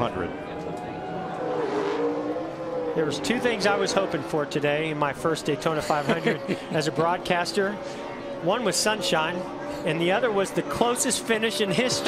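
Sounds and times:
race car engine revving: 0:00.4 - 0:12.0.

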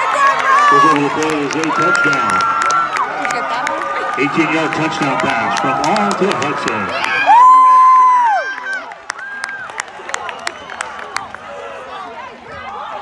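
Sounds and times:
spectator cheering woo: 0:00.0 - 0:10.7
scattered clapping: 0:00.0 - 0:11.6
crowd voices: 0:00.0 - 0:13.0
person whooping: 0:07.2 - 0:08.5.

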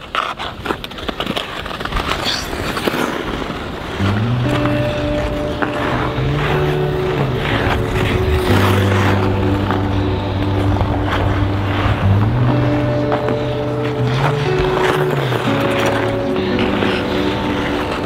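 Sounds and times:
ice skate blades scraping ice: 0:00.0 - 0:18.0
music with low held notes: 0:04.0 - 0:18.0.

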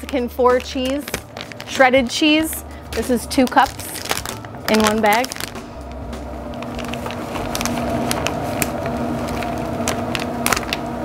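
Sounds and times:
cheese crackling into foil pan: 0:00.0 - 0:05.6, 0:06.5 - 0:11.0
mechanical hum: 0:00.0 - 0:11.0.

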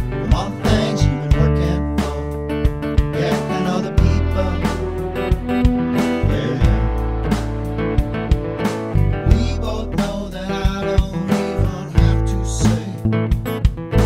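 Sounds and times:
person singing: 0:00.0 - 0:07.2, 0:09.2 - 0:13.1
acoustic guitar song: 0:00.0 - 0:14.0.

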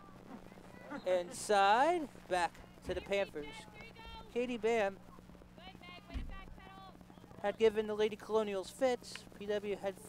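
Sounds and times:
steady low hum: 0:00.0 - 0:10.0
low thump: 0:06.1 - 0:06.5.

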